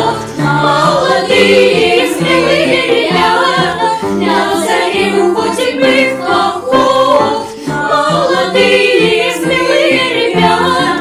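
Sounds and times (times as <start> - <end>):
children's choir singing: 0.0 - 11.0
piano accompaniment: 0.0 - 11.0.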